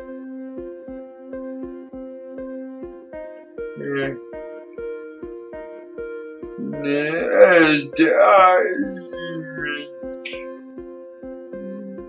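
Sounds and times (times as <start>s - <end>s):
man making vocal sounds: 3.8s - 4.2s, 6.6s - 10.4s.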